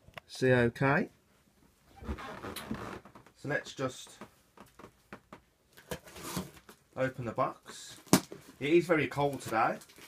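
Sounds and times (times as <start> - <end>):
tape and cardboard rustling: 5.7 - 6.8, 7.9 - 10.0.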